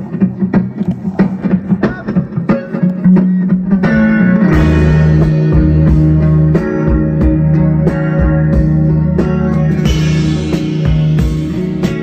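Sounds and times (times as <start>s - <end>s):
live band music: 0.0s - 12.0s
picked guitar notes: 0.0s - 12.0s.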